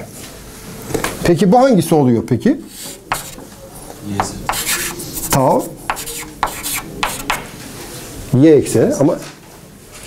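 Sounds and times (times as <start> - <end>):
chalk scratching on a blackboard: 2.7 - 3.5, 4.2 - 7.6.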